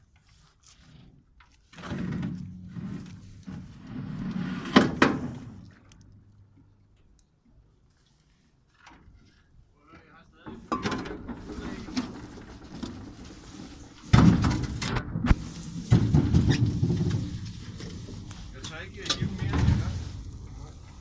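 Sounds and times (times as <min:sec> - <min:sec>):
knocks and scraping on metal boat: 0:00.7 - 0:05.8, 0:08.7 - 0:21.0.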